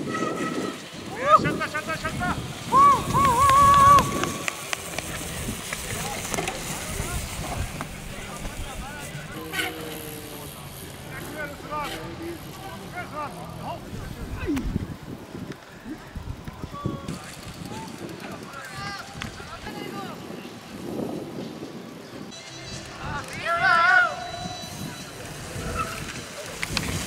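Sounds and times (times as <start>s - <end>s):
people whooping and yelling: 1.1s - 4.8s, 23.2s - 26.5s.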